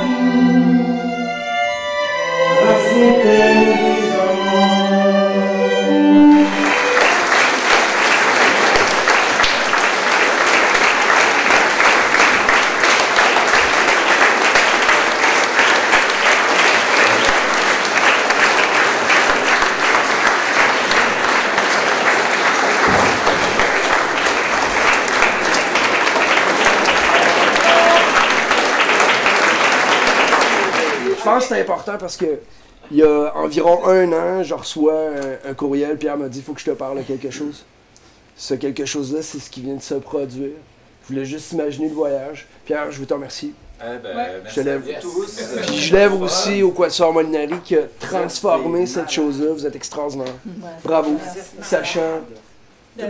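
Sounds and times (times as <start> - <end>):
audience applauding: 5.9 - 31.7.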